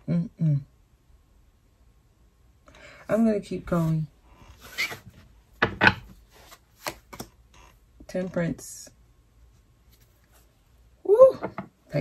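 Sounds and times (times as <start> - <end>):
cards sliding and scraping: 4.6 - 5.2, 6.3 - 7.3.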